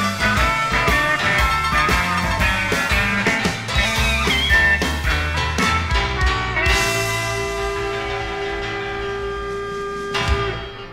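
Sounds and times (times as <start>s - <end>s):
electric blues band sustained chord: 4.8s - 10.9s.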